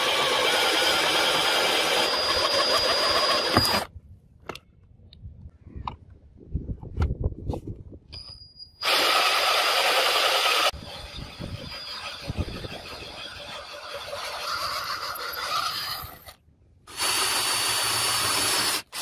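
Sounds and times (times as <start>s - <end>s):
drill hole cutter cutting steel: 0.0s - 3.9s, 8.8s - 19.0s.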